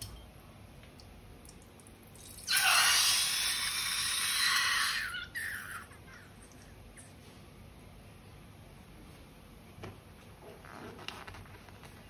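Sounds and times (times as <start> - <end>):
slime and air spurting from balloon: 2.5 - 5.0.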